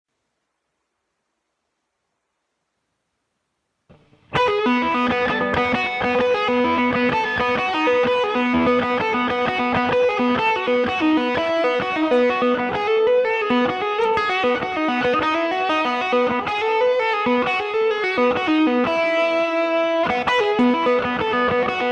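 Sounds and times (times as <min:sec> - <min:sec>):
electric guitar lead line: 0:03.9 - 0:21.9.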